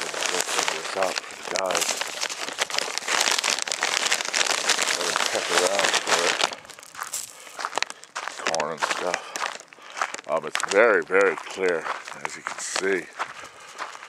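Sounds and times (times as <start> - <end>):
man murmuring: 0.0 - 1.9, 4.9 - 6.4, 8.5 - 9.4, 10.3 - 13.2
bag crinkling and rustling: 0.0 - 13.1.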